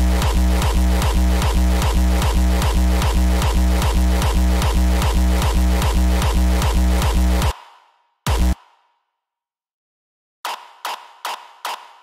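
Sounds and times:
distorted kick drum: 0:00.0 - 0:07.5, 0:08.3 - 0:08.6.

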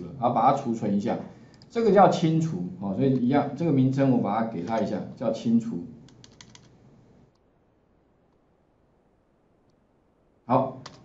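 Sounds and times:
faint computer keyboard keystrokes: 0:06.0 - 0:06.8, 0:10.8 - 0:11.0.

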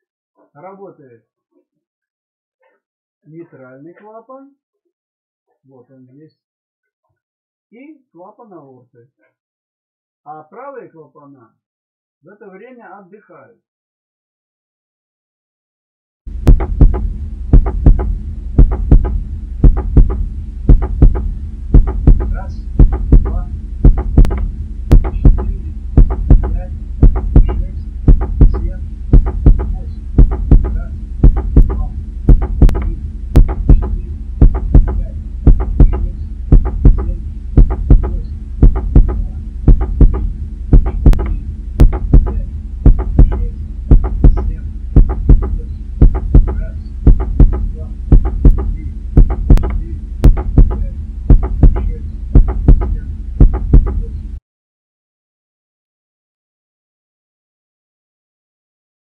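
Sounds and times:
heartbeat lub-dub: 0:16.3 - 0:54.4
low steady hum: 0:16.3 - 0:54.4.

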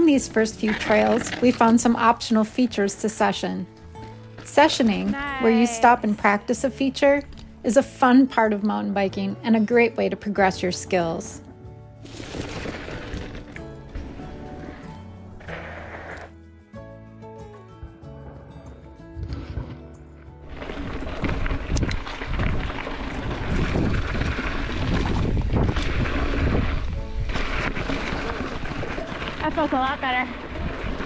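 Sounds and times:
mountain bike rolling on dirt: 0:00.0 - 0:08.8, 0:12.0 - 0:16.4, 0:20.4 - 0:31.0
background music with held notes: 0:00.0 - 0:21.0
wind rushing on microphone: 0:21.2 - 0:29.2.

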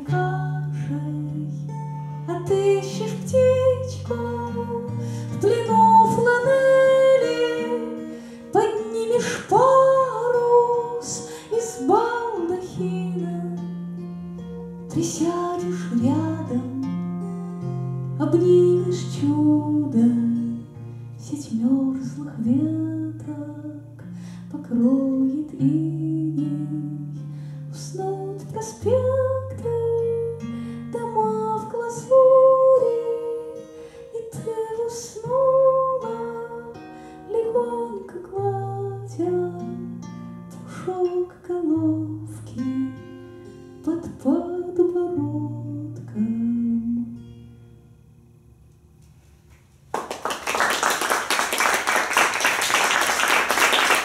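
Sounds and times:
woman singing: 0:00.0 - 0:14.0, 0:14.8 - 0:17.4, 0:18.1 - 0:47.3
strummed acoustic guitar: 0:00.0 - 0:47.8
audience applause: 0:49.9 - 0:54.0.

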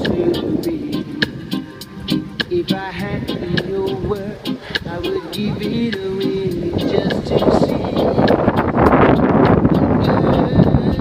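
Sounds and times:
strong wind buffeting microphone: 0:00.0 - 0:11.0.

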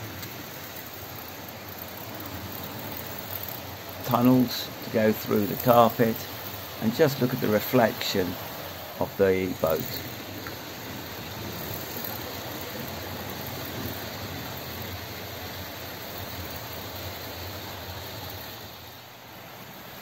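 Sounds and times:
model trains whirring: 0:00.0 - 0:20.0.

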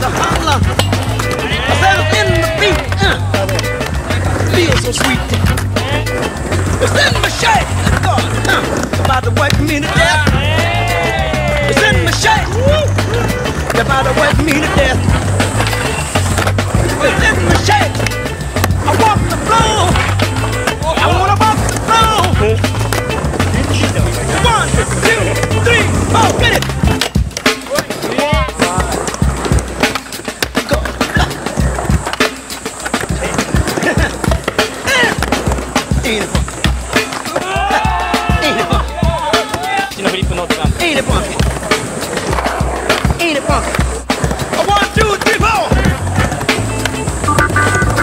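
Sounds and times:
funk music: 0:00.0 - 0:48.0
skateboard wheels rolling: 0:00.0 - 0:48.0
skateboards knocking on concrete: 0:00.0 - 0:48.0.

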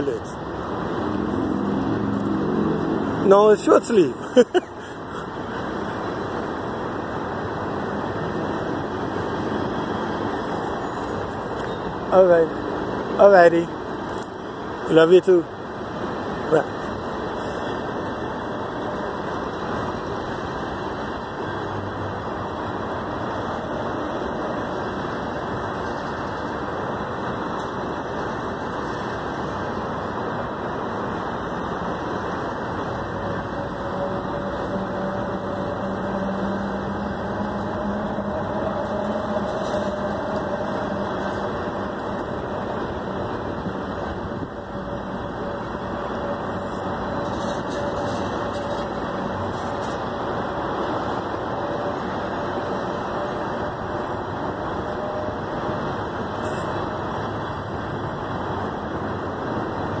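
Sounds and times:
freight train wheels on rails: 0:00.0 - 1:00.0.

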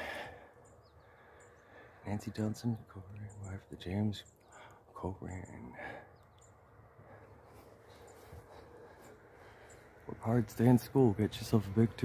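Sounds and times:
breathy exhale: 0:00.0 - 0:02.0
faint high bird chirps: 0:00.4 - 0:10.3.

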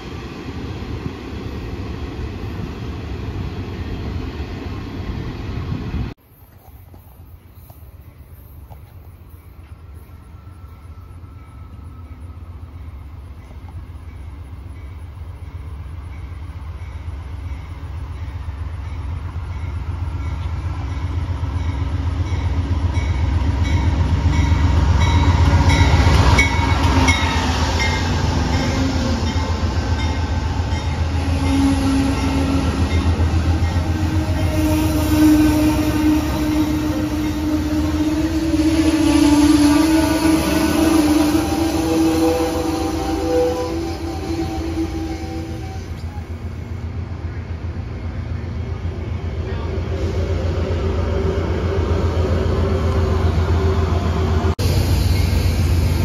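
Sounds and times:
passenger train rumbling by: 0:00.0 - 0:56.0.

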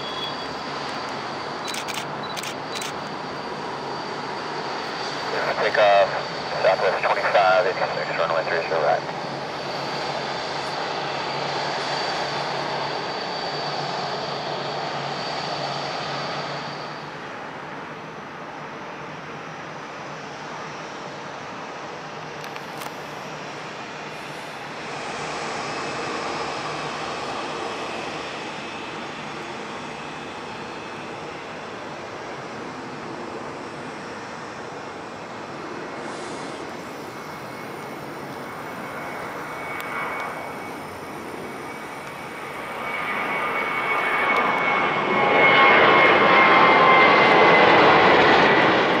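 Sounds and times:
high engine whine: 0:00.0 - 0:49.0
jet engines rumbling: 0:00.0 - 0:49.0.

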